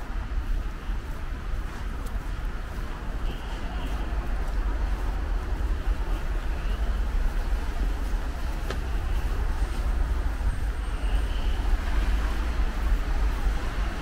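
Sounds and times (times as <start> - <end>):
cars going by: 0.0 - 14.0
low traffic rumble: 0.0 - 14.0.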